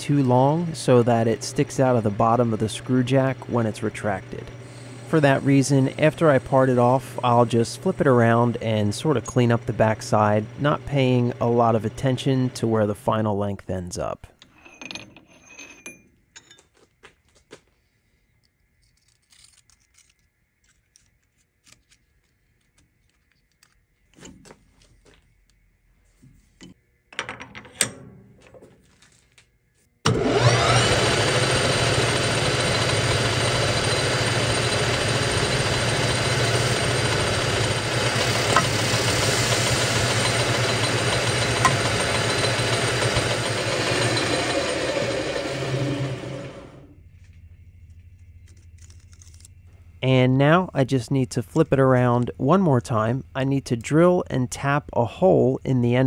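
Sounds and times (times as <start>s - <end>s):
lathe spindle hum and whine: 0.0s - 12.7s, 30.1s - 47.4s.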